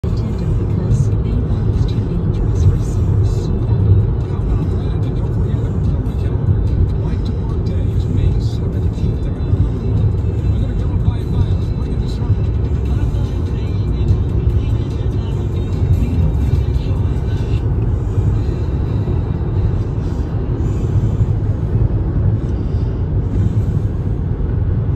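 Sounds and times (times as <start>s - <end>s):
road and tyre rumble: 0.0s - 24.9s.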